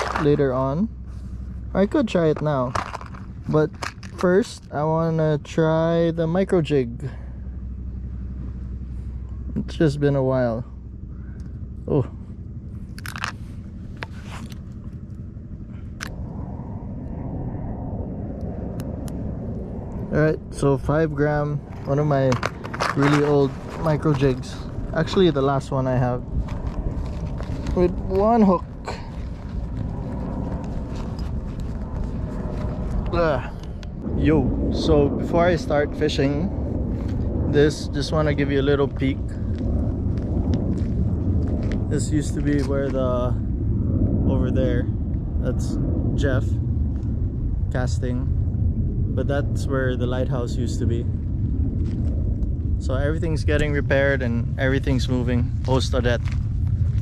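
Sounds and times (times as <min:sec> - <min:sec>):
low outdoor rumble: 0:00.0 - 0:57.0
wind buffeting microphone: 0:00.0 - 0:57.0.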